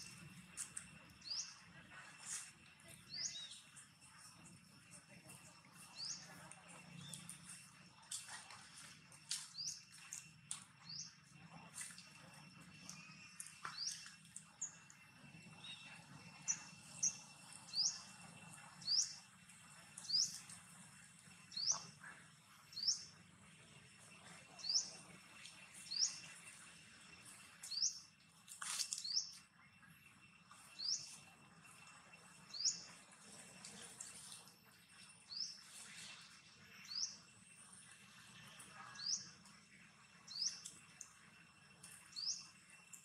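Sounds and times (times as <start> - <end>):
bird chirping: 1.2 - 1.6, 12.7 - 19.2, 20.0 - 20.6, 21.5 - 23.1.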